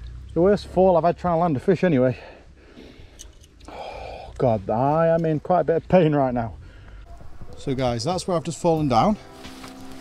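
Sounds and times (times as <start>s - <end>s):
faint background noise: 0.0s - 10.0s
man sighing heavily: 3.7s - 4.3s.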